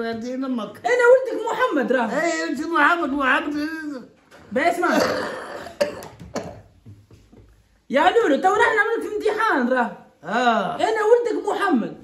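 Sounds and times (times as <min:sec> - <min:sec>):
man clearing his throat: 0:04.9 - 0:06.7
elderly man coughing: 0:04.9 - 0:06.8.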